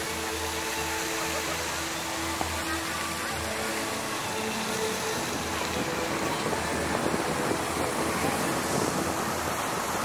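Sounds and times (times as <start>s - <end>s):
faint voices: 0.0s - 10.0s
fountain water splashing: 0.0s - 10.0s.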